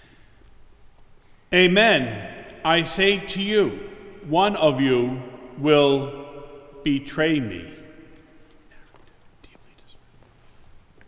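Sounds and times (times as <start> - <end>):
faint rustling: 8.2 - 11.0.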